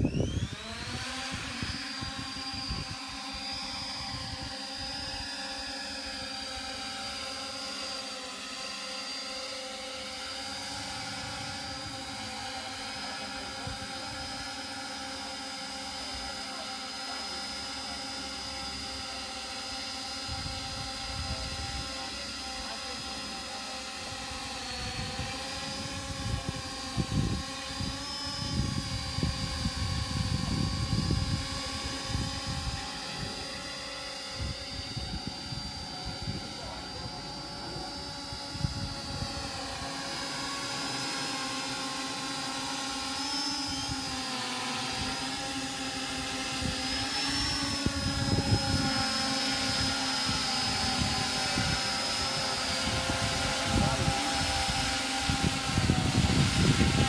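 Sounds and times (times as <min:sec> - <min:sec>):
drone motors whining: 0:00.0 - 0:57.0.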